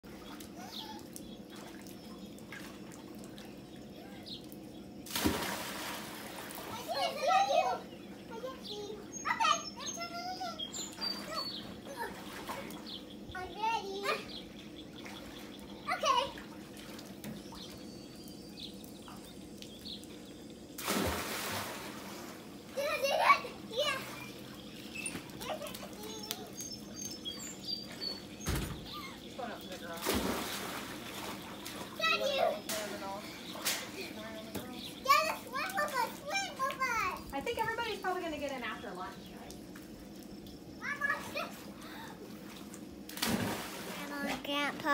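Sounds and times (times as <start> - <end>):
children chattering and calling out: 3.8 - 4.4, 6.6 - 14.6, 15.8 - 16.6, 22.7 - 27.2, 31.8 - 38.2, 40.7 - 42.4, 43.9 - 44.9.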